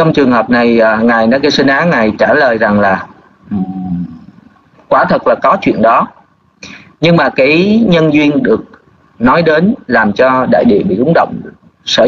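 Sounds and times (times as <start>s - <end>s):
man's hesitation sound: 3.4s - 4.4s
man speaking over voice chat: 4.9s - 6.2s.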